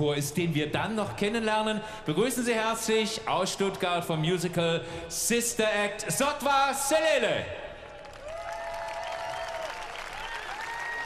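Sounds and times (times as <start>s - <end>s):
large audience applauding: 7.9s - 11.0s.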